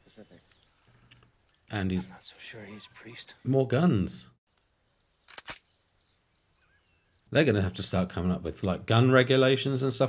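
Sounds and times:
faint bird chirps: 0:00.0 - 0:02.9, 0:04.5 - 0:07.4
jungle ambience: 0:00.0 - 0:10.0
sharp clicks: 0:04.5 - 0:05.7.

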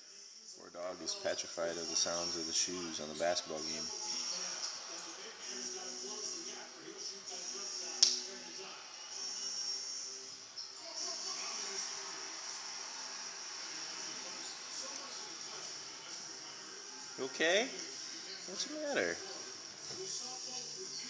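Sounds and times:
faint television commentary: 0:00.0 - 0:21.0
high-pitched hiss: 0:00.0 - 0:21.0
sharp click: 0:08.0 - 0:08.2.

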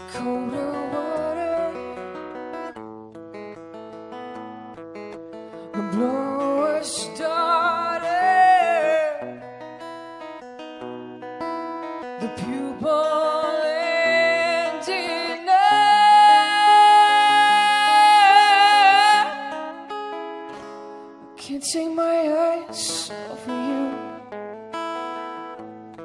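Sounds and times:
woman singing a slow ballad: 0:00.0 - 0:02.5, 0:05.7 - 0:09.5, 0:12.2 - 0:20.1, 0:21.4 - 0:24.2
plucked acoustic guitar: 0:00.0 - 0:26.0.

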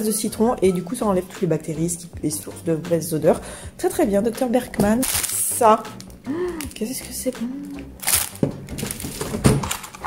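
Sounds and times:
plastic wrapper crinkling: 0:05.0 - 0:06.8, 0:07.6 - 0:10.0
packages knocking on table: 0:08.3 - 0:09.9.

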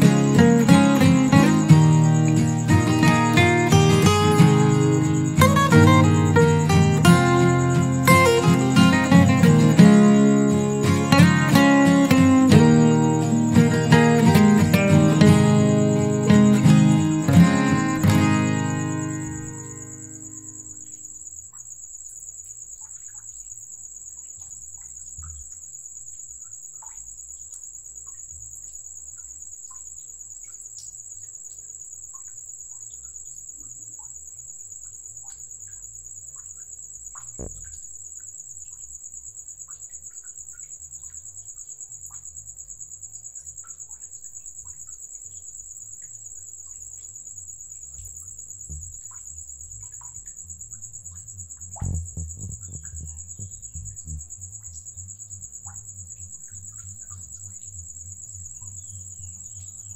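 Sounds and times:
guitar music: 0:00.0 - 0:20.8, 0:48.7 - 0:54.7
faint bird chirps: 0:00.0 - 0:42.3, 0:43.1 - 0:59.9
insects chirring: 0:00.0 - 0:59.9
low rumble: 0:48.7 - 0:58.3.

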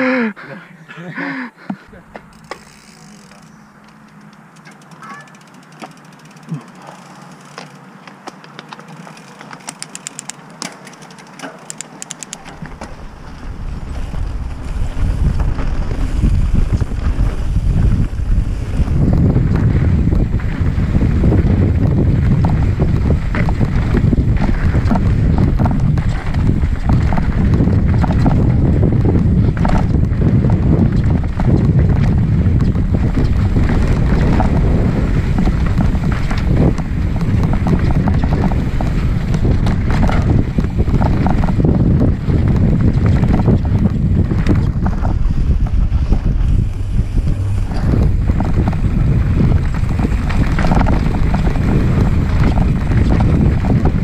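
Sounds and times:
bike rumbling and rattling over rocks: 0:01.9 - 0:54.0
light rapid clicking: 0:08.3 - 0:12.6
wind buffeting microphone: 0:12.0 - 0:54.0.

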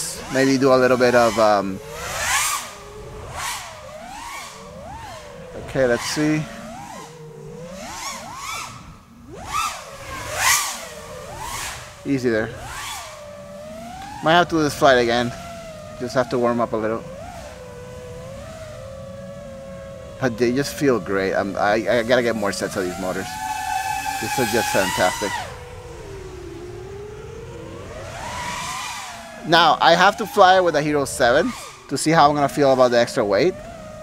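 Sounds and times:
drone motor whine: 0:00.0 - 0:34.0.

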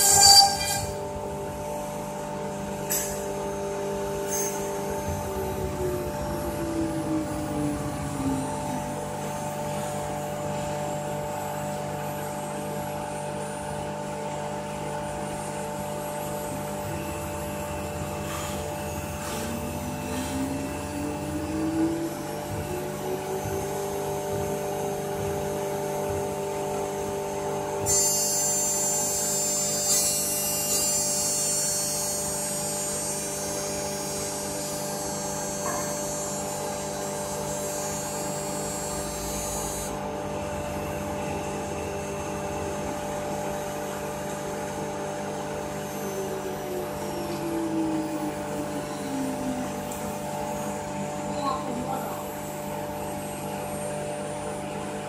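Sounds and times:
very high-pitched tone: 0:00.0 - 0:01.2, 0:02.8 - 0:10.7, 0:16.5 - 0:26.2, 0:27.8 - 0:32.4, 0:45.5 - 0:52.4
wood router machine whine: 0:00.0 - 0:55.0.

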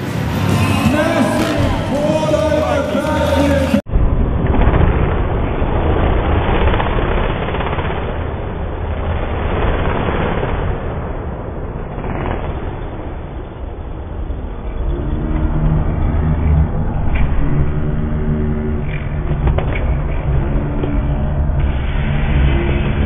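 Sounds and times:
low-pitched music: 0:00.0 - 0:03.9
dirt bike engines rumbling: 0:00.0 - 0:23.0.

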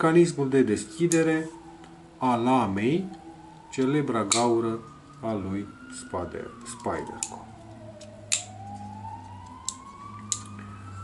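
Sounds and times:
siren wailing: 0:00.0 - 0:11.0.

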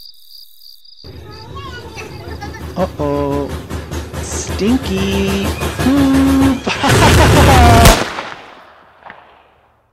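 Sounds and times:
loud distorted blast: 0:04.3 - 0:08.4
sharp crack: 0:06.8 - 0:09.9.

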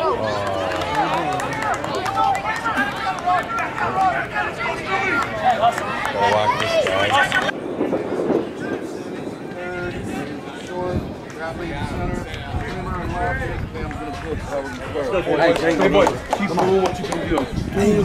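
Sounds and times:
crowd talking and calling out: 0:00.0 - 0:18.0.

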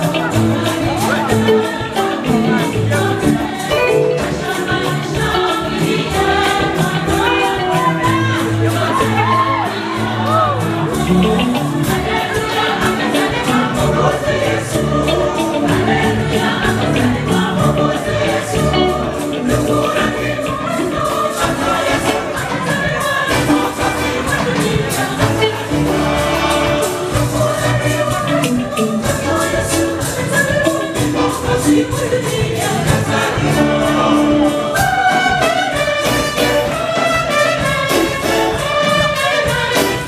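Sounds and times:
church choir singing: 0:00.0 - 0:40.0
drums keeping a steady beat: 0:00.0 - 0:40.0
live band: 0:00.0 - 0:40.0.

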